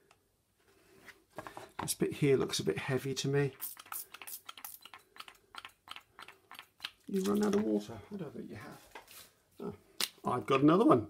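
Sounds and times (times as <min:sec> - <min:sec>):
spray bottle spritzes: 0:03.5 - 0:05.6.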